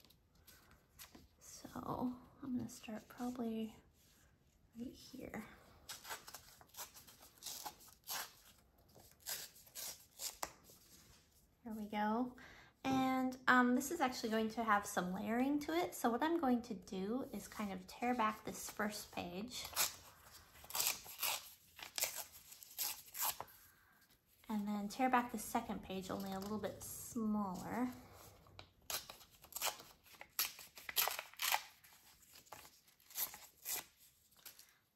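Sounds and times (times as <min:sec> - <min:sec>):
paper tearing by hand: 0:05.9 - 0:10.6, 0:19.6 - 0:23.5, 0:28.9 - 0:34.6.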